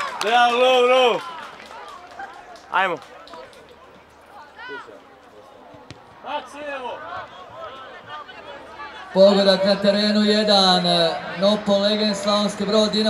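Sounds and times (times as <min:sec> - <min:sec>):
ball being kicked: 0:05.7 - 0:06.2.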